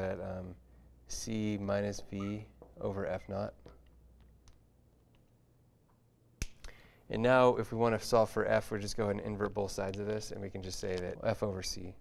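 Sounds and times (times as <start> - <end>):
sharp click: 6.4 - 6.8.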